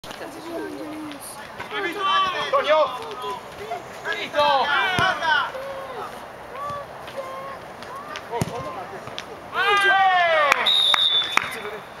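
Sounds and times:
referee's whistle: 0:10.6 - 0:11.8.

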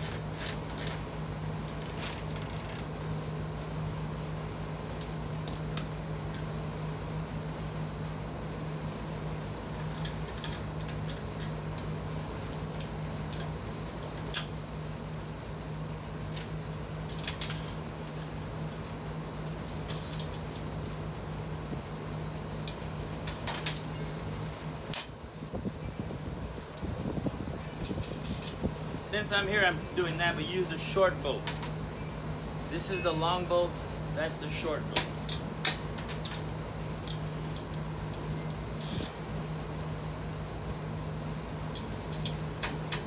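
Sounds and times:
steady hum: 0:00.0 - 0:43.0.

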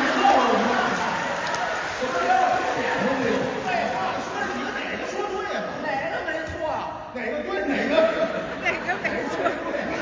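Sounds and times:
audience chatter: 0:00.0 - 0:10.0
men talking over each other: 0:00.0 - 0:10.0.

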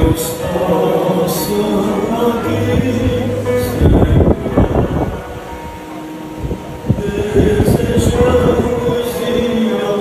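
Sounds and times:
crowd sound: 0:00.0 - 0:10.0
music with long held note: 0:00.0 - 0:10.0.

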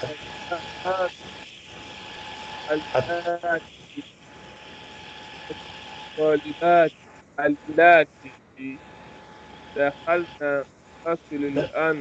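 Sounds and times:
person speaking over a call line: 0:00.0 - 0:01.1, 0:02.7 - 0:04.1, 0:06.2 - 0:08.8, 0:09.8 - 0:12.0
steady hiss: 0:00.0 - 0:12.0.

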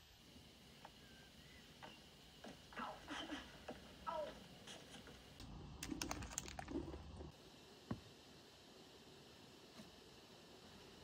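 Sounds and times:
plastic wrapper crinkling: 0:05.8 - 0:06.9.

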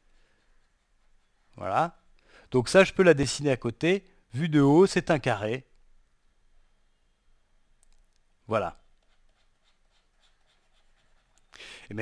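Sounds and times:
stylus scratching on tablet: 0:00.0 - 0:02.1, 0:08.6 - 0:12.0.

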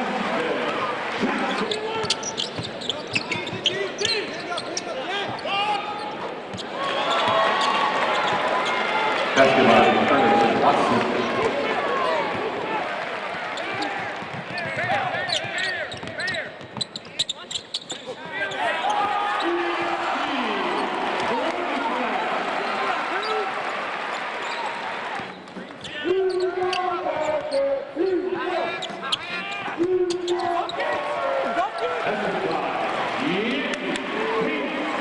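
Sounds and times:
sneakers squeaking: 0:01.4 - 0:10.0, 0:13.4 - 0:19.9, 0:24.1 - 0:27.8, 0:28.6 - 0:31.0
arena voices: 0:06.8 - 0:15.9.

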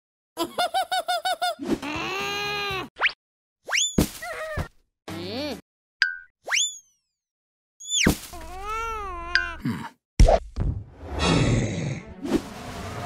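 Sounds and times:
squeaky cartoon chirps: 0:06.5 - 0:07.0, 0:07.8 - 0:08.1.

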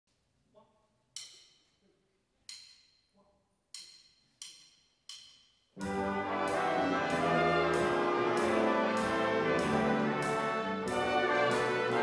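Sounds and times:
big band with brass: 0:05.8 - 0:12.0.

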